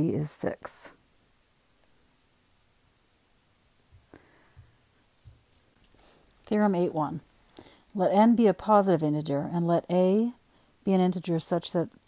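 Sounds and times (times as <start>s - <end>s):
scratching strokes on glass screen: 1.0s - 4.1s, 5.0s - 5.9s, 6.5s - 8.6s.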